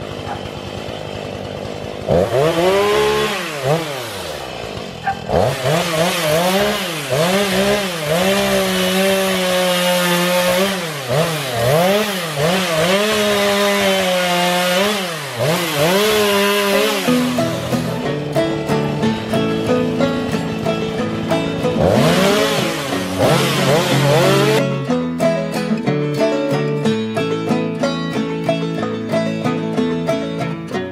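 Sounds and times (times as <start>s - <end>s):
chainsaw cutting wood: 0.0s - 30.9s.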